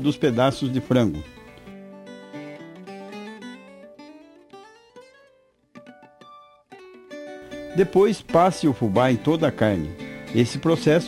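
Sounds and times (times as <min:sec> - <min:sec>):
acoustic guitar picking notes: 0:00.0 - 0:11.0.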